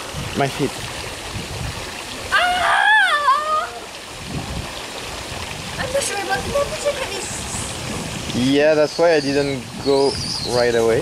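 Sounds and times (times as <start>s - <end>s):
running water rushing: 0.0s - 11.0s
person crying out wavering: 2.3s - 3.8s.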